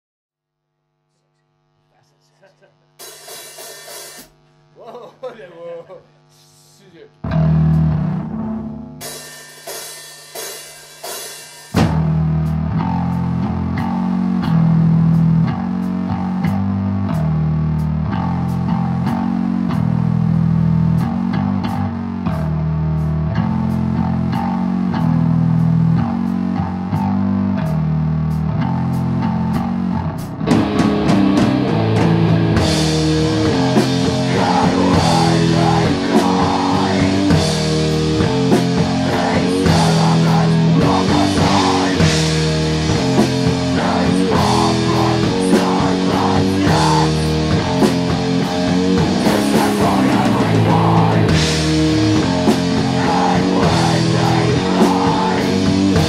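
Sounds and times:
distorted electric guitar chords: 1.5 - 56.0
heavy metal band playing: 7.2 - 56.0.

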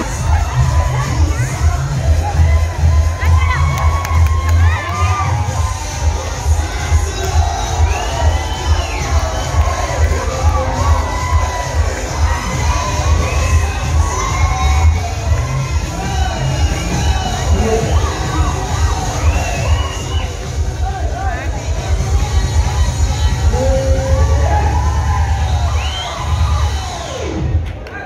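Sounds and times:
loud dance music: 0.0 - 27.8
crowd cheering and shouting: 0.0 - 28.0.

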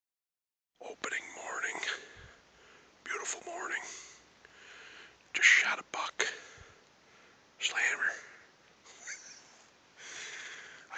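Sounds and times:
man whispering: 0.8 - 2.4, 3.0 - 4.2, 5.3 - 6.8, 7.6 - 8.5.

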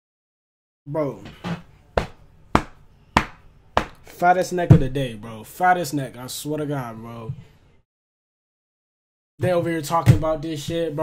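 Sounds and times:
hand banging on a desk: 1.4 - 4.0.

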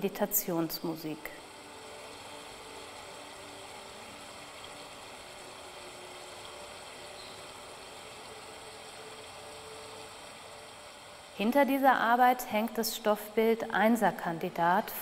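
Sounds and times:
running water: 0.0 - 15.0
soft meditation music: 0.0 - 15.0.

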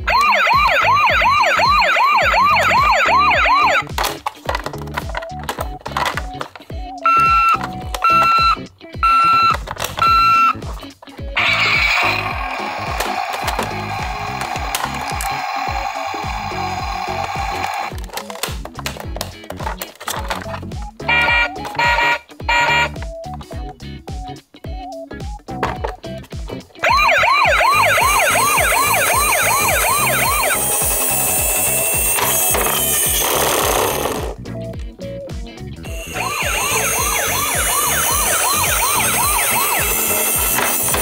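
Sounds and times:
toy siren wailing: 0.0 - 3.9, 7.0 - 10.6, 11.4 - 18.0, 21.0 - 23.0, 26.8 - 34.4, 35.9 - 41.0
toys being handled clicks: 2.5 - 8.5, 9.2 - 22.0, 27.0 - 34.4, 35.9 - 41.0
short electronic beeps: 7.1 - 10.6.

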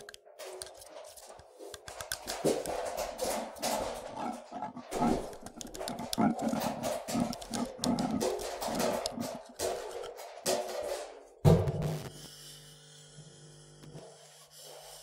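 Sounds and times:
experimental noise music: 2.3 - 10.3, 11.4 - 12.2.

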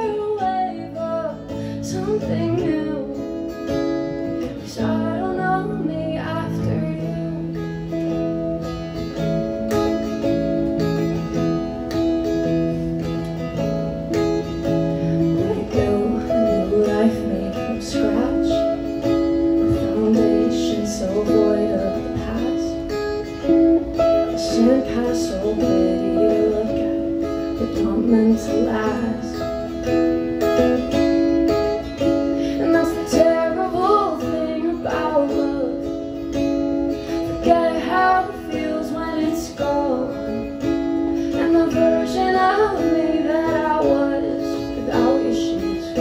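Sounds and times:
woman singing: 0.0 - 11.7, 14.4 - 46.0
strummed acoustic guitar: 0.0 - 46.0.

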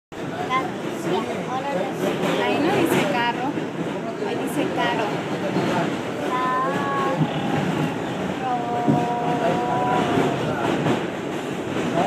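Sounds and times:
subway train rumble: 0.1 - 12.0.

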